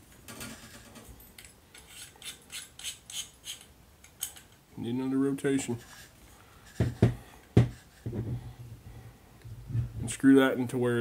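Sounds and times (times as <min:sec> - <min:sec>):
metal tube clicking and scraping: 0:00.3 - 0:04.6.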